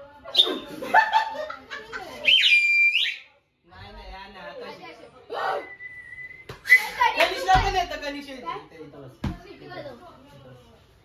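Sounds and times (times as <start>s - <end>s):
laughter: 0.4s - 2.3s
toy whistle blast: 2.3s - 3.3s.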